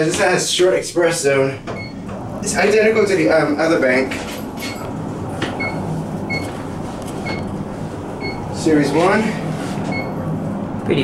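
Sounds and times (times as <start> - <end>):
elevator low hum: 0.9 - 11.0.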